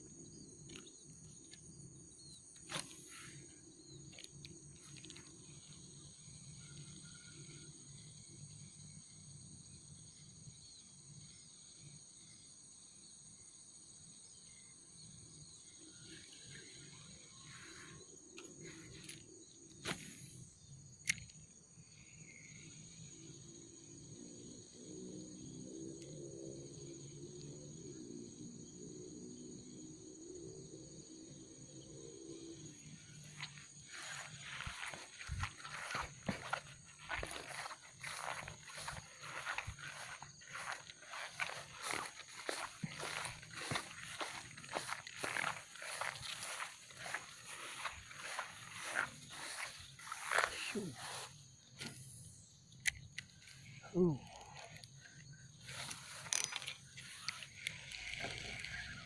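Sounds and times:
high insect drone: 0.0 - 59.0
grass and brush rustling: 33.1 - 52.0, 55.0 - 59.0.

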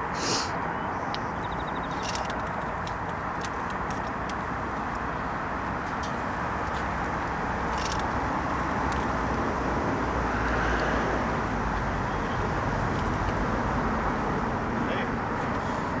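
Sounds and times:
distant freeway traffic: 0.0 - 16.0.

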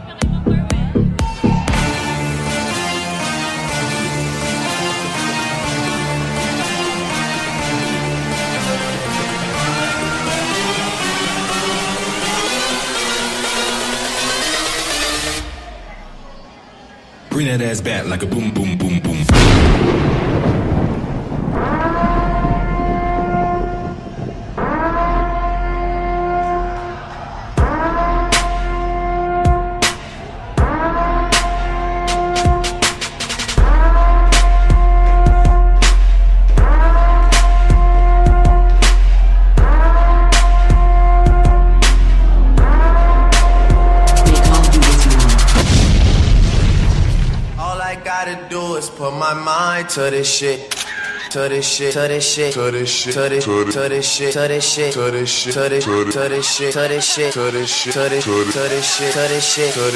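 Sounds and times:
dance music over sound system: 0.0 - 15.4, 17.4 - 19.4, 31.3 - 45.6, 51.6 - 59.9
voice sample: 17.3 - 19.6, 43.9 - 45.6
deep boom sound effect: 19.3 - 25.0, 41.4 - 47.9
horn-like blasts: 21.6 - 27.0.

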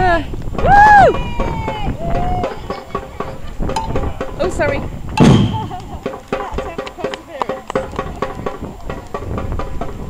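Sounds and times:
samba percussion playing: 1.1 - 10.0
voices talking: 1.1 - 10.0.

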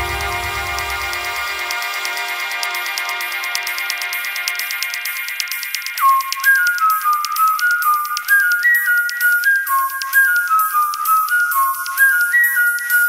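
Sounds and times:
high whistle-like sliding melody: 0.0 - 13.0
steady ticking beat: 0.0 - 13.0.

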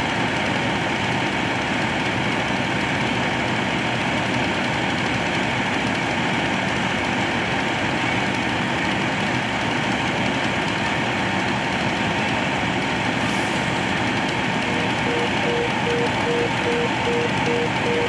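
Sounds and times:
fire truck engine droning: 0.0 - 18.0.

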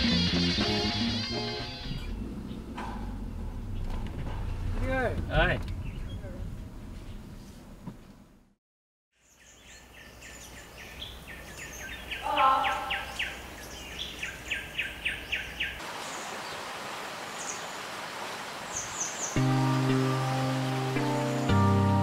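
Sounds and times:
background music with low chords: 0.0 - 2.8, 19.4 - 22.0
birds calling: 0.6 - 6.4, 9.2 - 22.0.

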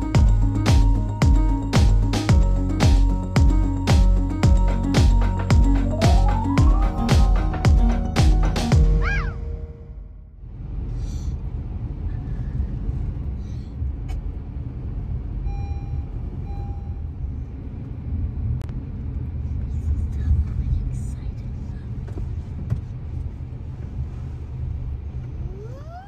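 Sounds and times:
road rumble inside car: 10.1 - 26.0
short electronic beeps: 15.4 - 17.1.

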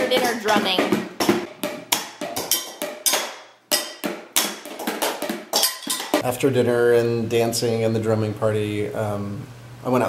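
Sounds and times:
wooden spoons drumming on kitchenware: 0.0 - 6.2.

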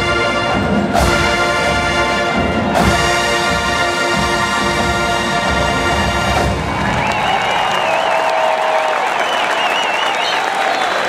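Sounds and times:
stadium crowd applauding and cheering: 5.7 - 11.0
warbling whistle: 9.1 - 10.6.

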